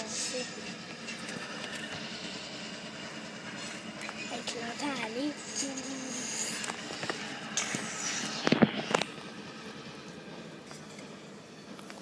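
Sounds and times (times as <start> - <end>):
distant diesel locomotive drone: 0.0 - 12.0
open-air noise: 0.0 - 12.0.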